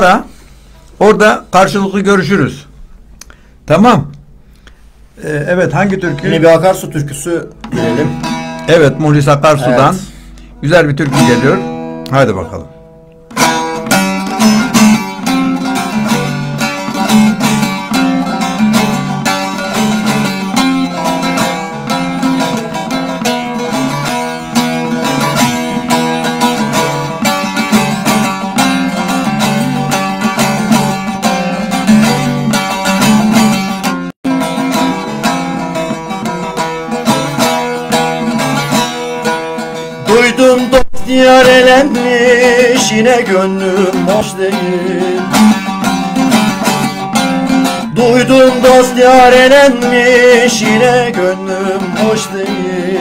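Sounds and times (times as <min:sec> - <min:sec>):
plucked long-necked lute: 0:05.7 - 0:53.0.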